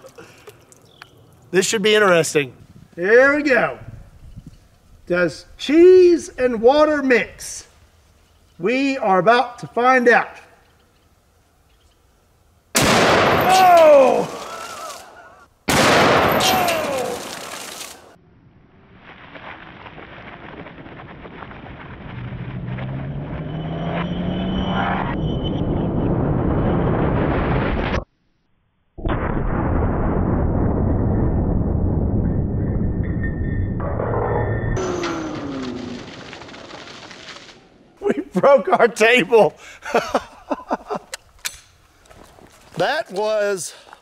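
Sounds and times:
rifle shot ringing out: 12.8 - 13.6, 15.7 - 17.4.

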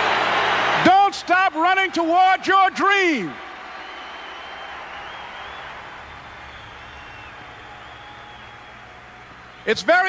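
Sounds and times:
audience applauding and cheering: 0.0 - 10.0
whistles: 3.6 - 9.7.

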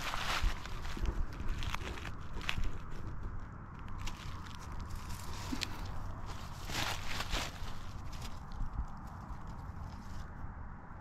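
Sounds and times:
footsteps on leafy forest floor: 0.0 - 10.1
faint rustling: 0.0 - 10.4.

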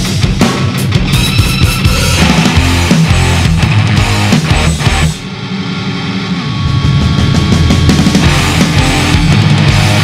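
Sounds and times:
heavy rock band playing: 0.0 - 10.0
held droning guitar chord: 2.6 - 10.0.

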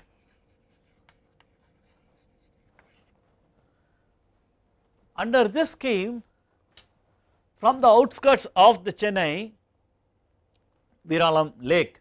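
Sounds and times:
chalk tapping and scratching: 0.0 - 3.3.

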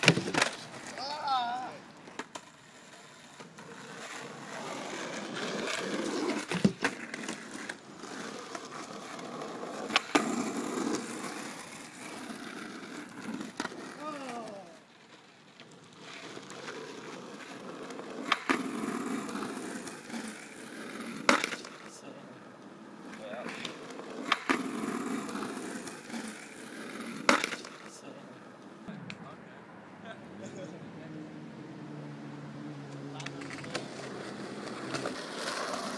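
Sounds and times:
skateboard cracking on ground: 0.0 - 29.2, 32.9 - 35.9
skateboard wheels rolling on tarmac: 0.0 - 35.9.

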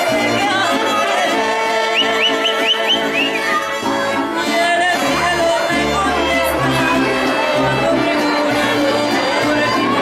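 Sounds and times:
mariachi violins playing: 0.0 - 10.0.

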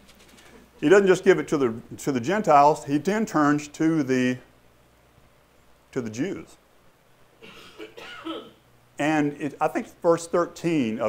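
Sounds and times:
person clearing throat: 7.4 - 8.6
person coughing quietly: 7.4 - 8.6.

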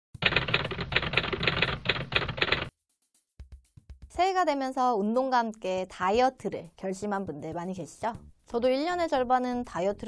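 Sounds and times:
typewriter key strikes: 0.2 - 2.7.

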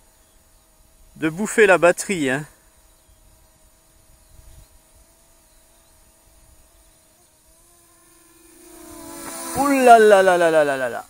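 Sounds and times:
drone motors humming: 0.0 - 11.0.

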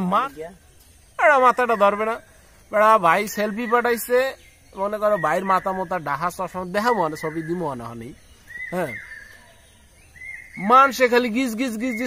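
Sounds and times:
man speaking loudly: 1.2 - 8.1, 10.6 - 12.0.

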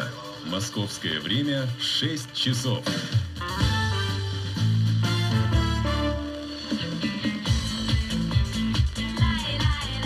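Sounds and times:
radio music through car stereo: 0.0 - 3.5, 6.3 - 10.0.

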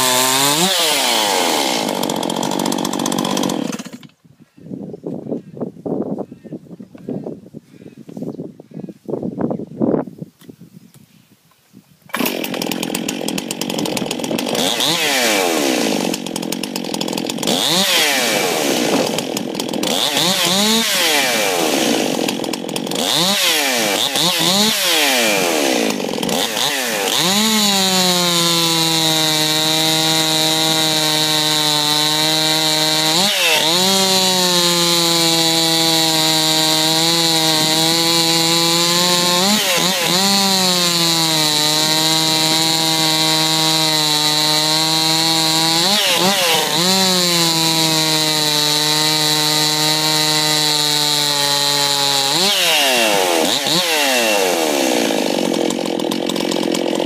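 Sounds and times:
chainsaw cutting log: 0.0 - 4.2, 12.1 - 57.0
chainsaw revving: 0.0 - 4.2, 12.1 - 57.0.

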